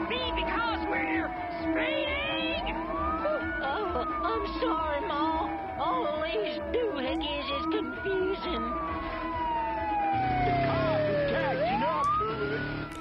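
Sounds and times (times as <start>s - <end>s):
cartoon siren wailing: 0.0s - 13.0s.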